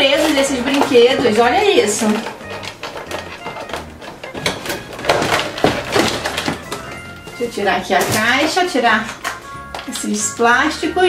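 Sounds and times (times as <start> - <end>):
plastic toys knocking and clicking: 0.0 - 10.9
background music: 0.0 - 11.0.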